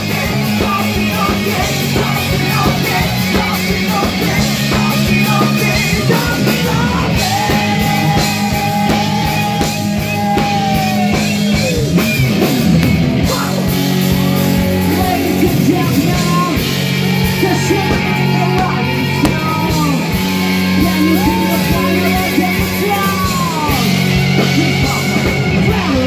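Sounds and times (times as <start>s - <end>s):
person singing lead vocals: 0.0s - 11.9s, 13.2s - 26.0s
drum kit: 0.0s - 26.0s
electric guitars: 0.0s - 26.0s
keyboard: 0.0s - 26.0s.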